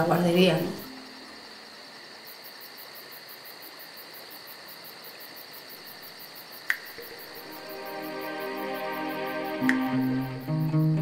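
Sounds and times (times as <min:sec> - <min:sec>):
high-pitched insect chirping: 0:00.0 - 0:11.0
steady hiss: 0:00.0 - 0:11.0
short sharp click: 0:09.6 - 0:09.9.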